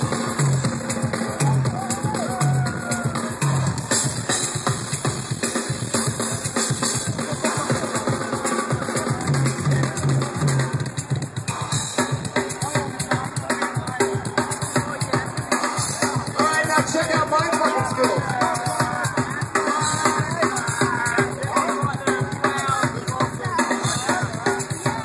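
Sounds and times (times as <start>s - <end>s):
rock drum solo: 0.0s - 25.0s.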